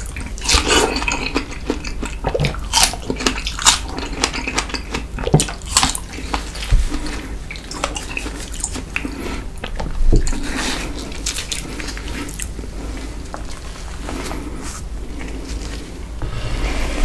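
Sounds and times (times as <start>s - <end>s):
wet chewing: 0.0s - 13.7s.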